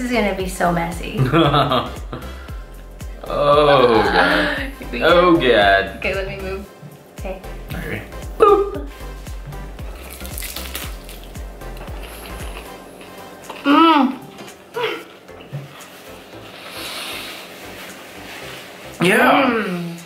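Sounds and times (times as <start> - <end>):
background music with low beat: 0.0 - 20.0
person humming while eating: 8.2 - 9.0, 11.8 - 15.5
faint chewing of crispy food: 9.8 - 18.0.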